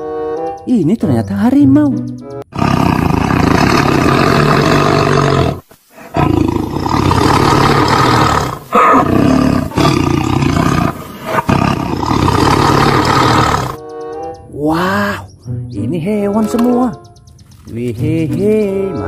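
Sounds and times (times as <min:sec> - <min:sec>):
tiger roaring and growling: 0:02.5 - 0:13.8.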